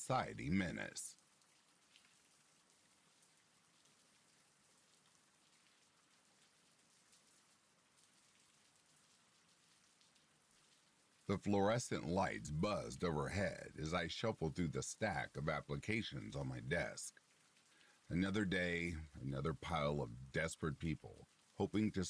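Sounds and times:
faint steady rain: 0.0s - 22.0s.

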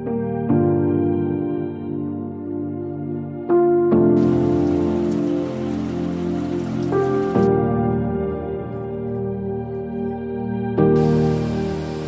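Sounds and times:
soft ambient music: 0.0s - 12.0s
steady rain falling: 4.2s - 7.5s, 11.0s - 12.0s.

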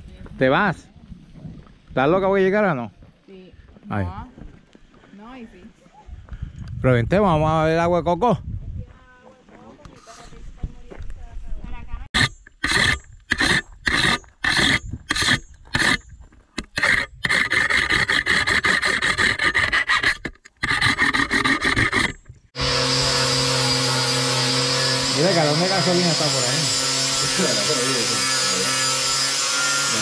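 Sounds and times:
angle grinder cutting metal: 12.2s - 16.0s, 16.6s - 30.0s
file rasping on steel blade: 12.2s - 30.0s.

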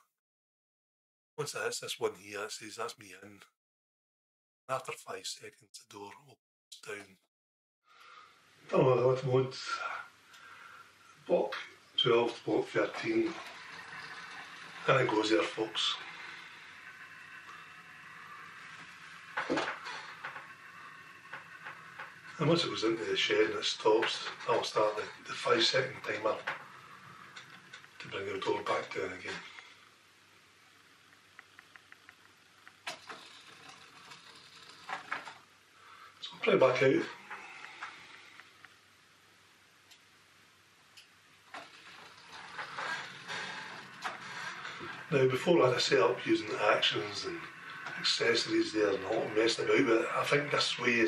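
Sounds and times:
model locomotive whine: 11.6s - 29.8s, 41.5s - 51.0s
roller door clicking and hissing: 12.1s - 29.8s, 31.5s - 35.5s, 37.1s - 38.6s, 41.4s - 51.0s
faint clicks: 31.1s - 35.4s.

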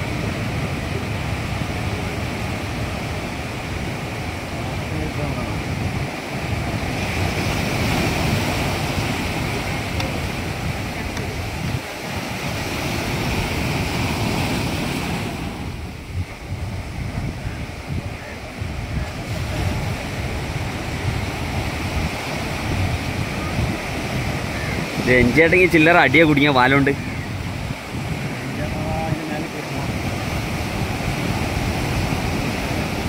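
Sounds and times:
sea surf breaking on shore: 0.0s - 33.0s
wind buffeting microphone: 0.0s - 33.0s.

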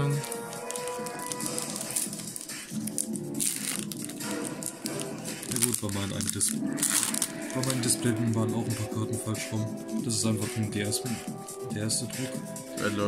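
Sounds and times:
foil wrapper crinkling: 0.0s - 8.5s
background music: 0.0s - 13.0s.

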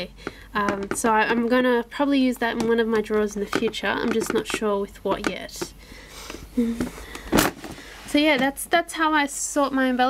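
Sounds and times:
plastic drawer sliding shut: 7.3s - 7.8s.

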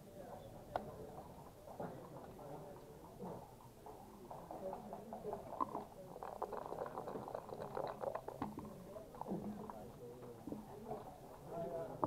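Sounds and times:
murmur of voices: 0.0s - 12.0s
dice rattling in a cup: 5.3s - 9.3s.

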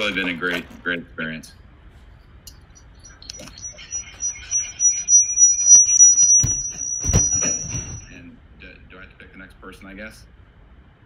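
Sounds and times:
steady high-pitched whine: 2.2s - 9.3s
heavy thumps: 5.9s - 8.2s.

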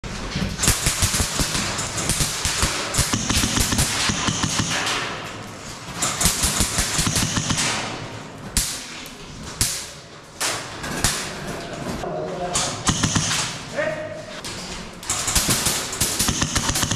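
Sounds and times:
airsoft guns automatic bursts: 0.6s - 5.1s, 6.0s - 8.0s, 12.8s - 13.6s, 15.1s - 16.9s.

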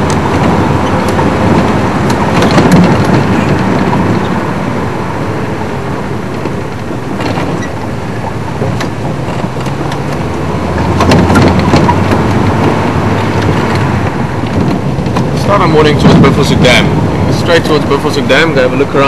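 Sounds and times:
road noise: 0.0s - 19.0s
vehicle engine drone: 0.0s - 19.0s.

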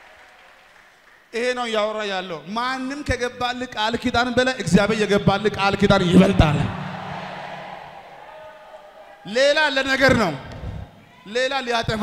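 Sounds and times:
man's voice through hall pa: 1.4s - 7.6s, 9.1s - 12.0s.

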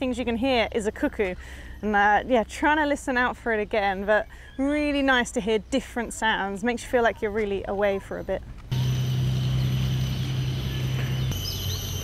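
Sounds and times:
low steady hum: 8.6s - 12.0s
insects droning: 8.7s - 12.0s
high bird chirps: 9.4s - 12.0s.

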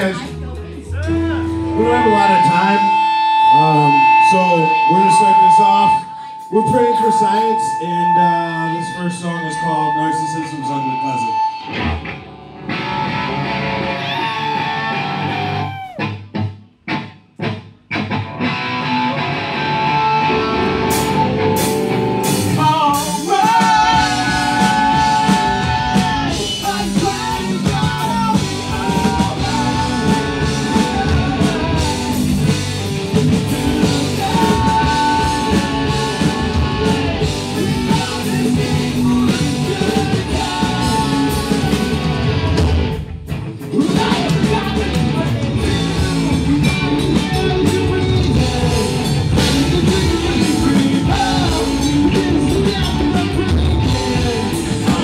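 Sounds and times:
electric guitar figure: 0.0s - 55.0s
rock band playing live: 0.0s - 55.0s.

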